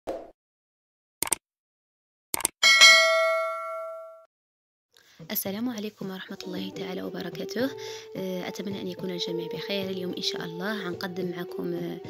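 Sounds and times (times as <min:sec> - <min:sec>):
bell ding: 0:02.6 - 0:04.3.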